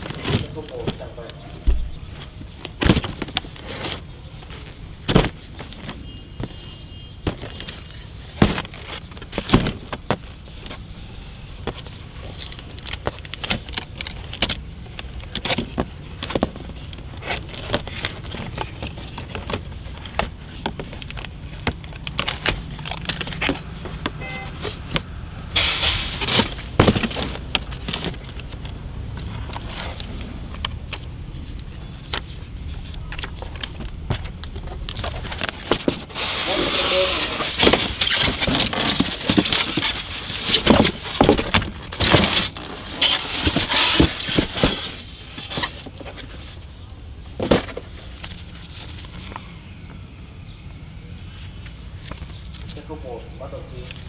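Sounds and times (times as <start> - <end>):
cardboard rustling: 0.0 - 1.2, 1.8 - 49.4
cardboard box clicks and scrapes: 26.1 - 28.6, 35.0 - 46.6.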